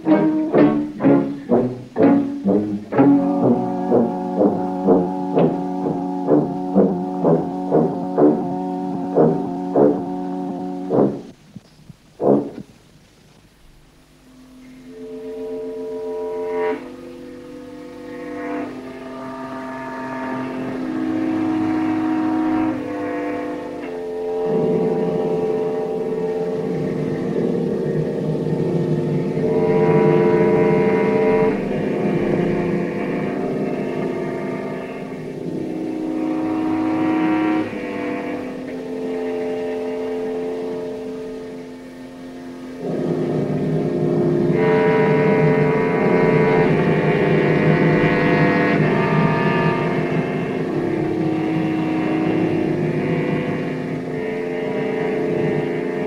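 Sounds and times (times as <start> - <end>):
orchestral film music: 0.0 - 11.4, 14.8 - 56.0.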